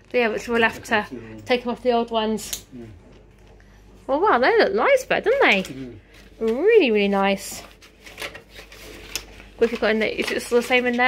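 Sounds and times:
paper rustling: 5.5s - 11.0s
plastic cards clicking and rustling: 7.5s - 11.0s.

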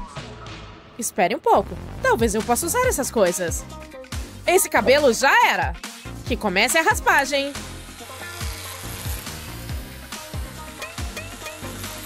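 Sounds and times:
light background music: 0.0s - 12.0s
electric hair clipper buzzing: 6.6s - 12.0s.

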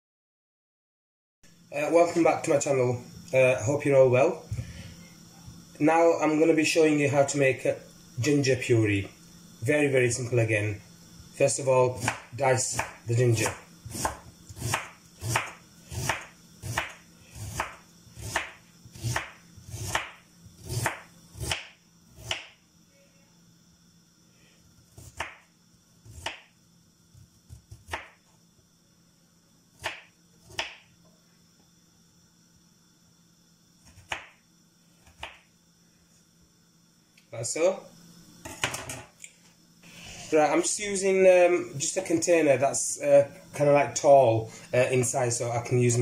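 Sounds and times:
knife cutting ginger on board: 12.0s - 22.5s.

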